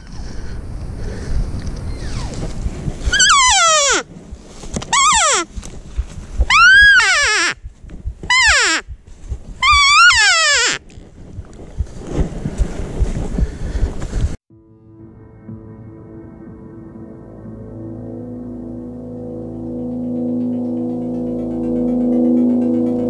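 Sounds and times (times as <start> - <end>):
footsteps rustling through brush: 4.3 - 6.5, 9.0 - 9.6.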